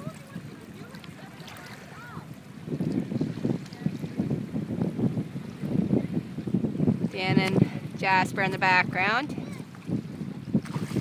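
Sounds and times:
small waves washing: 0.0 - 11.0
wind buffeting microphone: 0.0 - 11.0.

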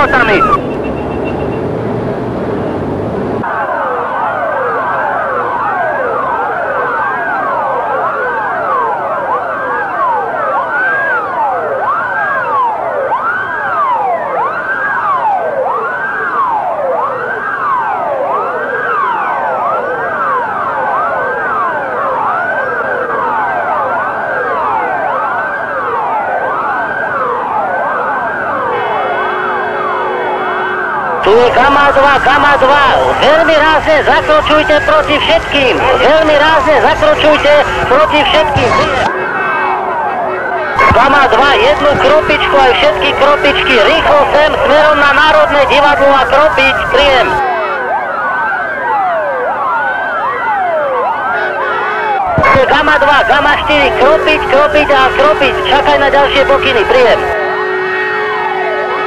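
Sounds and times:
steady rush of noise: 0.0 - 4.4, 31.2 - 47.4, 52.3 - 57.4
police car sirens wailing: 0.0 - 59.0.

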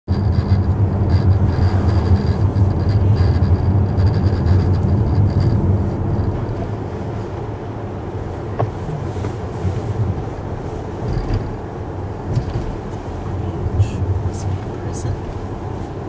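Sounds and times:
car engine and tyre rumble: 0.0 - 16.0.

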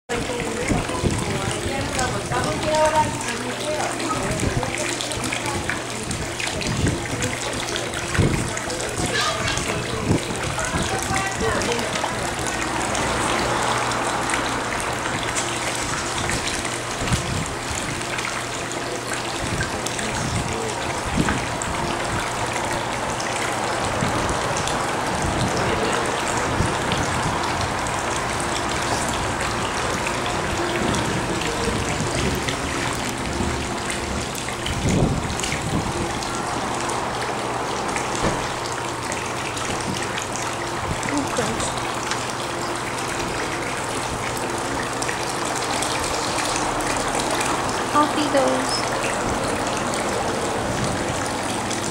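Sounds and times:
water splashing and trickling: 0.1 - 51.9.

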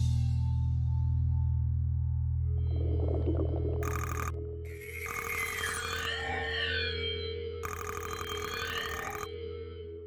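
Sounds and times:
low synth drone: 0.4 - 10.0
gliding electronic tones: 2.6 - 9.3.

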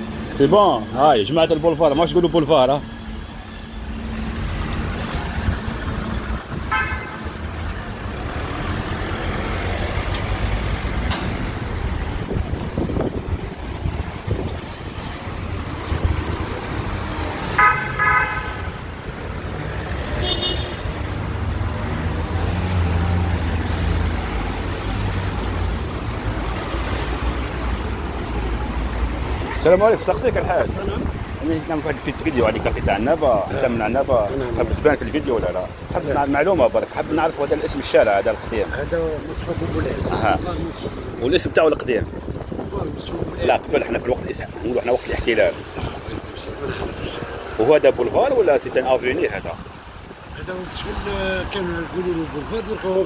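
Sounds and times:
street traffic: 0.0 - 53.0
car horn toots: 6.6 - 7.4, 17.6 - 18.8, 20.2 - 21.0.

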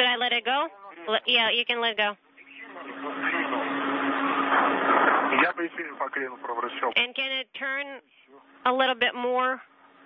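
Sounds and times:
voices over radio: 0.0 - 9.6
steady low hum: 0.0 - 10.0
radio hiss: 2.3 - 7.2.

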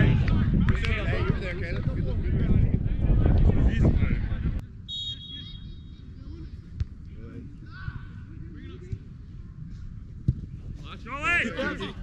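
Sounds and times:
wind rumble on microphone: 0.0 - 4.9
high whistle: 4.9 - 6.0.

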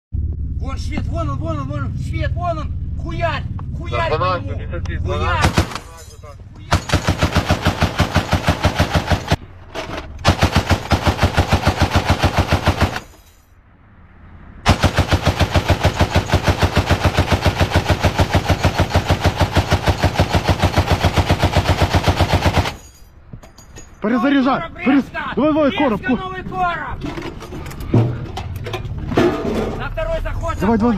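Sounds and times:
heavy machine gun automatic bursts: 6.8 - 9.4, 10.3 - 13.1, 14.7 - 22.8.

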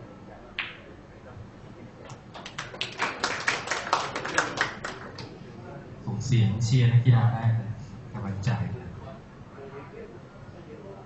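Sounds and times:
people clapping: 2.1 - 5.4.

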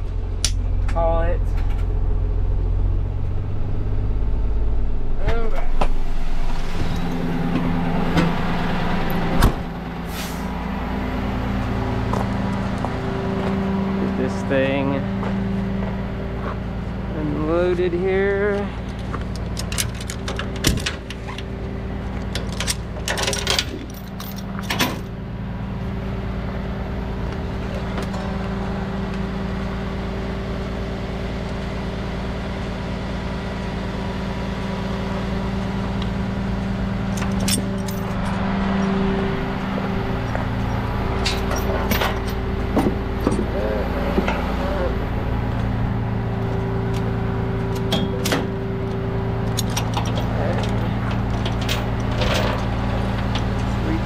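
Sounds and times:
truck engine idling: 0.0 - 54.0
chains and hooks clinking: 22.5 - 25.1, 37.1 - 38.4, 41.2 - 42.4, 49.5 - 52.7.

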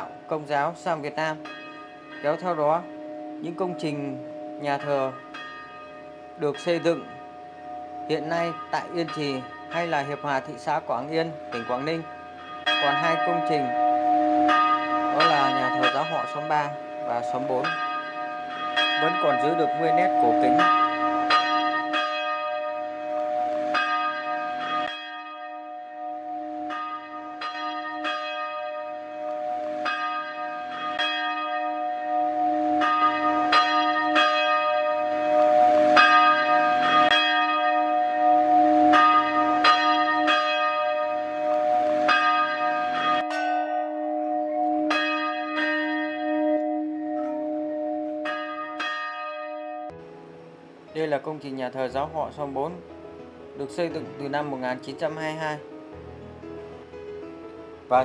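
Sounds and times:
church bell ringing: 0.0 - 56.6.

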